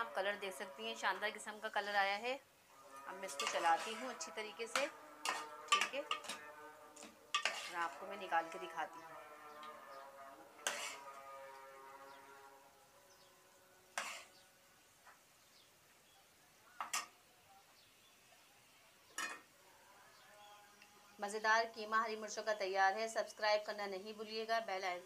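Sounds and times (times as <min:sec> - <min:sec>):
spoon knocking against metal pot: 0:04.7 - 0:06.4.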